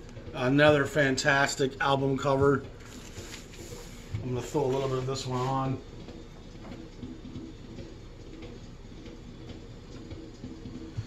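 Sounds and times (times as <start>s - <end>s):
muffled jazz record playing: 0.1s - 11.0s.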